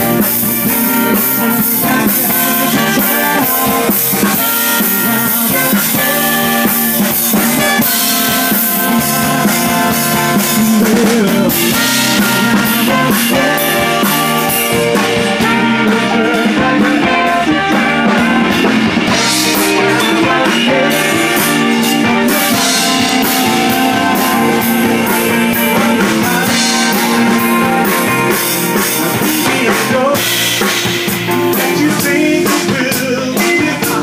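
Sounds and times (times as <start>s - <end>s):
drum kit steady beat: 0.0s - 34.0s
electric bass: 0.0s - 34.0s
horn section playing: 0.0s - 34.0s
keyboard: 0.0s - 34.0s.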